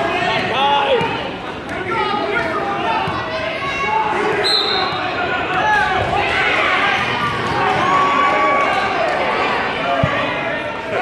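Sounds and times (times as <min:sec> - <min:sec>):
spectators shouting: 0:00.0 - 0:11.0.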